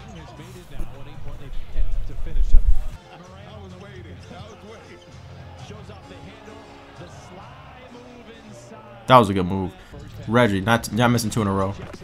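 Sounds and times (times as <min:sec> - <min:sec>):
arena crowd noise: 0:00.0 - 0:11.7
commentator talking: 0:00.6 - 0:03.0, 0:09.1 - 0:11.7.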